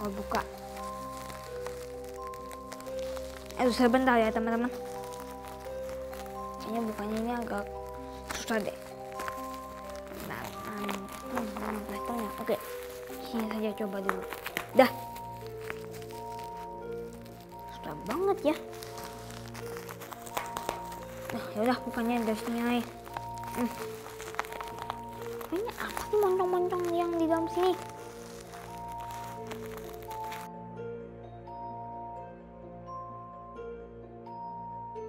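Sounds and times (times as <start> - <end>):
bubble wrap crackling: 0.0 - 30.6
slow held chord music: 0.0 - 35.0.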